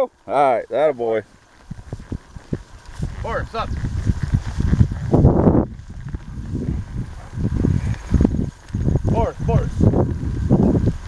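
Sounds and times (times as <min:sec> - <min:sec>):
wind buffeting microphone: 0:01.0 - 0:11.0
steps swishing through tall grass: 0:01.3 - 0:09.1.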